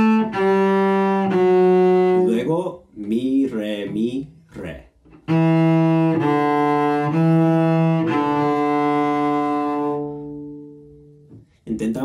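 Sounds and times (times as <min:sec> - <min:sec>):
bowed cello descending scale: 0:00.0 - 0:04.2, 0:05.1 - 0:11.5.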